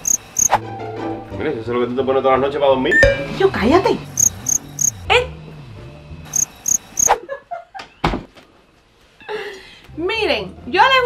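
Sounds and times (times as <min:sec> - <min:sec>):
cricket chirps: 0:00.0 - 0:00.6, 0:04.0 - 0:05.1, 0:06.3 - 0:07.2.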